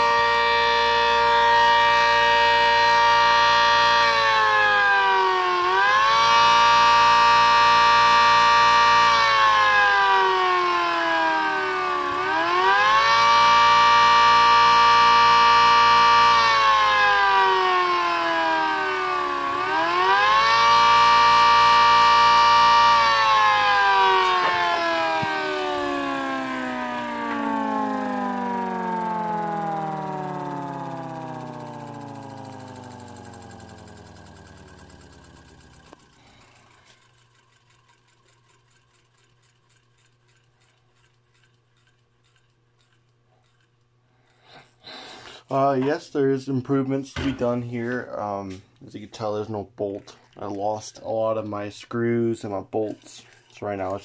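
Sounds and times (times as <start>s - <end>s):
two-tone motor siren: 0.0s - 43.7s.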